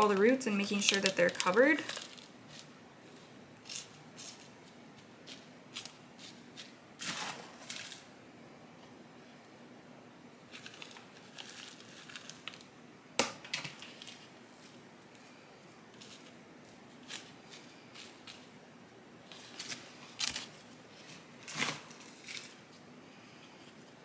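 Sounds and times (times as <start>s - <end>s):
potting mix rustling and crunching: 0.0s - 8.1s, 10.4s - 12.7s, 13.6s - 18.6s, 19.2s - 22.8s
potting mix pouring: 7.0s - 8.1s.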